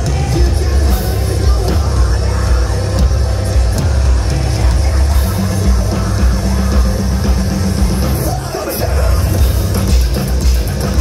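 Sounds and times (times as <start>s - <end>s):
bass guitar: 0.0s - 11.0s
distorted electric guitars: 0.0s - 11.0s
drum kit: 0.0s - 11.0s.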